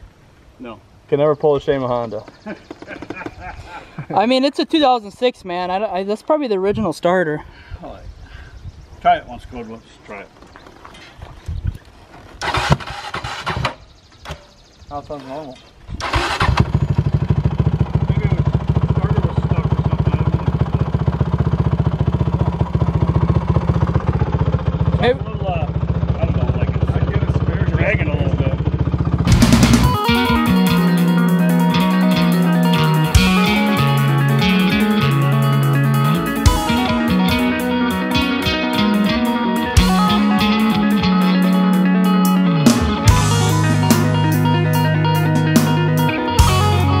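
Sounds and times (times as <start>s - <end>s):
quad engine idling: 16.0s - 47.0s
rock music with electric guitar: 29.3s - 47.0s.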